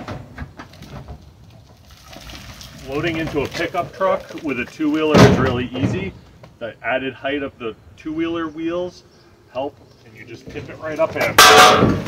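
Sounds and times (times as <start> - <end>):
hand truck wheels rolling on asphalt: 0.1 - 6.7, 9.6 - 12.0
metal cage knocking: 11.4 - 12.0.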